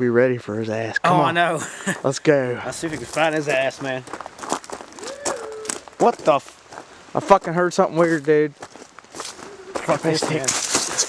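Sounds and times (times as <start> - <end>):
footsteps crunching dry leaves: 2.8 - 7.4, 8.0 - 11.0
weird rising call: 4.9 - 6.0, 9.4 - 10.0.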